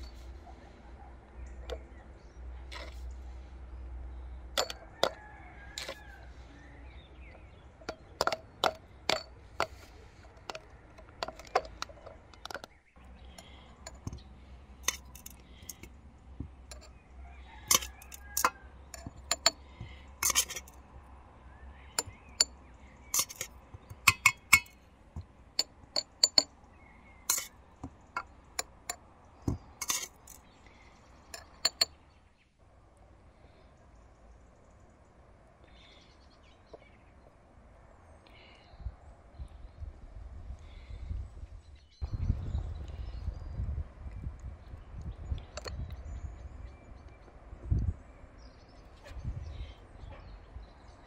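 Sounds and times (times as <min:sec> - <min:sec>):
glass jars and spoon clinking: 0:00.0 - 0:00.3, 0:02.7 - 0:03.0, 0:04.5 - 0:05.2, 0:05.8 - 0:06.0, 0:07.3 - 0:12.7, 0:13.3 - 0:14.2, 0:14.8 - 0:15.9, 0:16.7 - 0:16.9, 0:17.6 - 0:20.8, 0:21.9 - 0:24.8, 0:25.5 - 0:26.5, 0:27.2 - 0:30.4, 0:31.3 - 0:32.0, 0:45.5 - 0:45.9.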